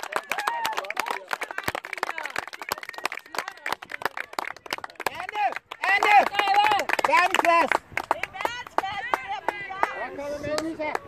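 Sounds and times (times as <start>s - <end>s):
spectators clapping: 0.0s - 11.0s.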